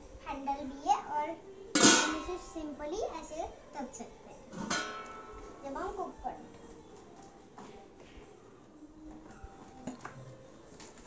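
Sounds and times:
metal lid clanging on pot: 0:01.8 - 0:02.3, 0:04.6 - 0:05.3.

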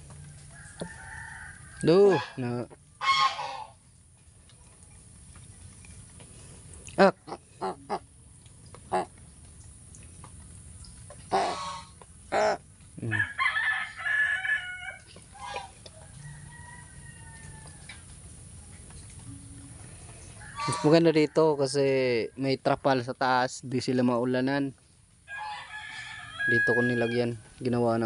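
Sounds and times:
crows calling harshly: 0:01.8 - 0:02.4, 0:03.0 - 0:03.8, 0:11.2 - 0:15.8, 0:20.4 - 0:21.1.

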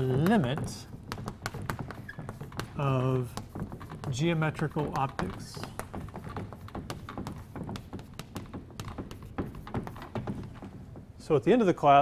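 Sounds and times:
chalk tapping and scratching: 0:00.0 - 0:11.6.

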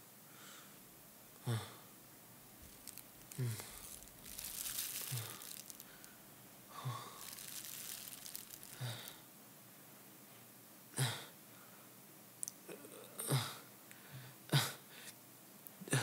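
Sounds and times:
plastic rustling: 0:02.6 - 0:06.2, 0:07.0 - 0:09.2
person gasping and groaning: 0:03.3 - 0:03.8.

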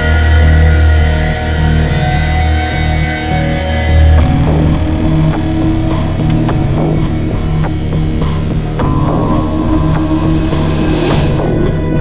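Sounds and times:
rock music with guitar: 0:00.0 - 0:12.0.

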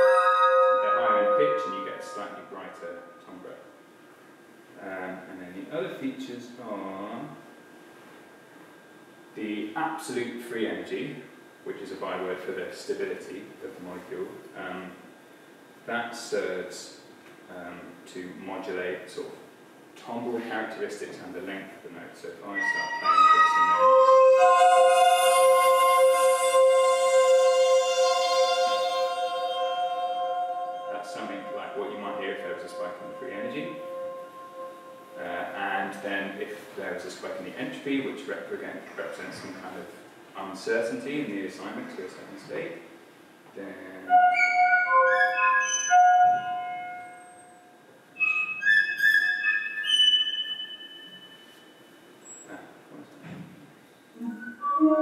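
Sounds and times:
synthesised electronic chord: 0:00.0 - 0:03.5, 0:22.6 - 0:36.1, 0:44.1 - 0:47.6, 0:54.5 - 0:55.0
sustained computer tones: 0:00.0 - 0:03.6, 0:22.6 - 0:36.3, 0:48.2 - 0:52.5, 0:54.2 - 0:55.0.

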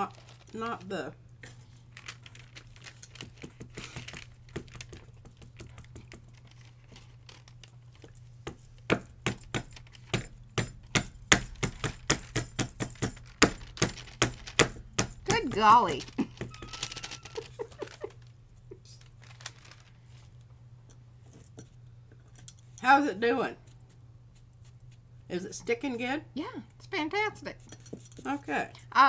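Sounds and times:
faint handling noises: 0:00.0 - 0:22.8.

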